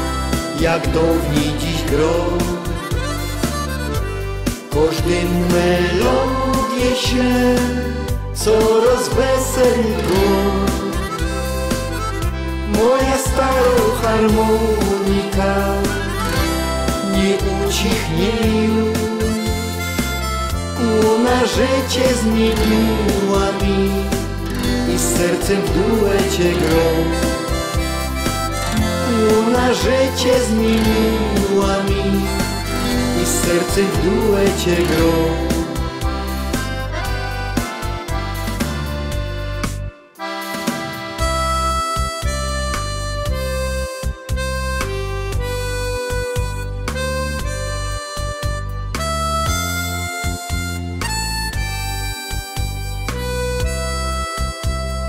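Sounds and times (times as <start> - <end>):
person singing: 0.0 - 3.4, 4.5 - 11.8, 12.5 - 19.8, 20.8 - 36.2
backing band with bass: 0.0 - 55.0
harmonica melody: 0.0 - 55.0.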